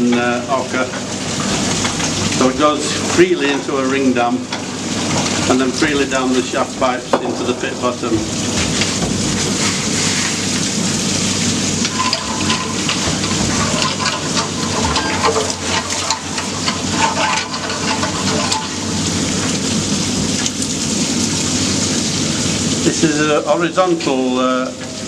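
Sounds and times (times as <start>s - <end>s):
water pouring from pipe: 0.0s - 25.0s
water splashing: 0.0s - 25.0s.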